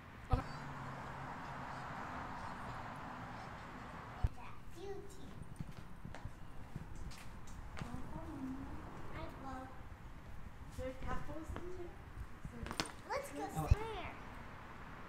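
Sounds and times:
children's voices: 0.3 - 5.6, 7.8 - 9.8, 12.7 - 14.2
footsteps on concrete: 5.2 - 9.2.

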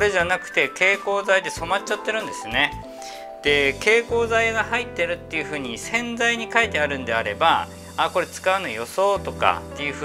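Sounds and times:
man speaking: 0.0 - 2.8, 3.4 - 10.0
soft background music: 0.0 - 10.0.

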